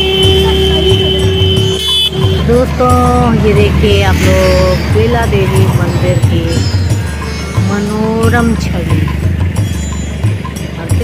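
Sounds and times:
music with strong bass: 0:00.0 - 0:11.0.

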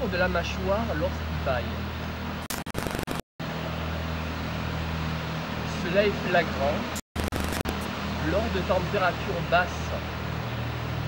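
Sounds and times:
sharp clicks: 0:02.4 - 0:03.2.

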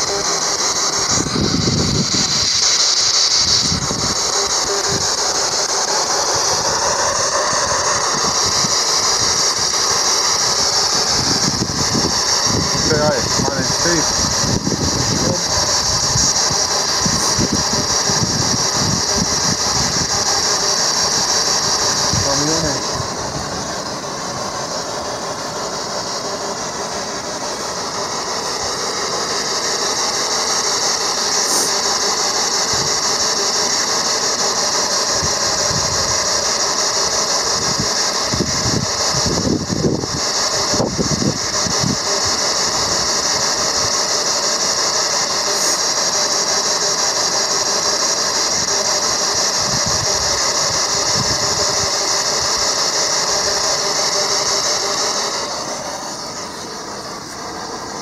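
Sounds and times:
radio static hiss: 0:00.0 - 0:58.0.

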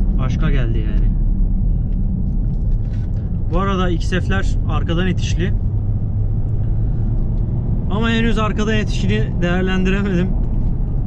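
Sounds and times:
car engine and road noise drone: 0:00.0 - 0:11.0.

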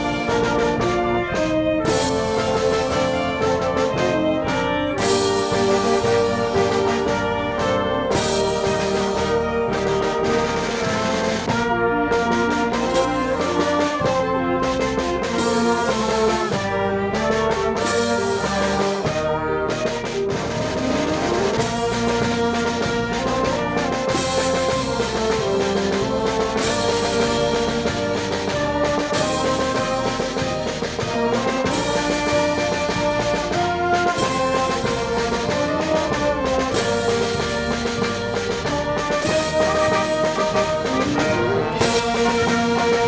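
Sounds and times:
band playing with brass and winds: 0:00.0 - 0:43.0
cymbal crashing: 0:39.3 - 0:43.0.

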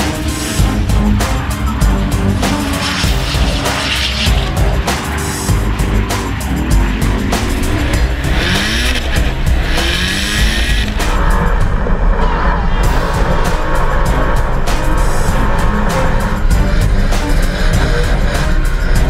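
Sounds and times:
background music: 0:00.0 - 0:19.0
car engines revving: 0:00.0 - 0:19.0.

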